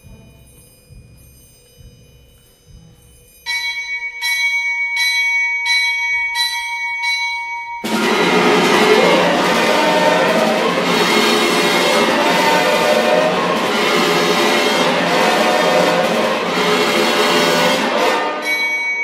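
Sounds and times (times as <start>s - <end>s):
bell-like percussion chord: 0.1s - 19.0s
full orchestra with brass: 7.9s - 18.8s.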